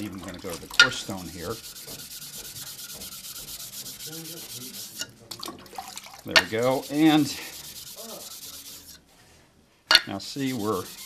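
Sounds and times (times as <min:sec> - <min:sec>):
plate scraping on wet whetstone: 0:00.0 - 0:05.2, 0:06.4 - 0:09.0, 0:10.2 - 0:11.0.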